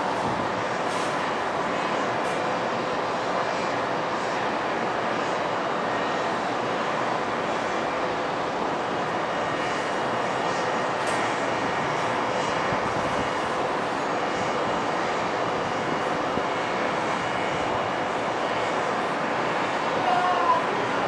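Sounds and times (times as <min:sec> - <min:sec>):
city background roar: 0:00.0 - 0:21.0.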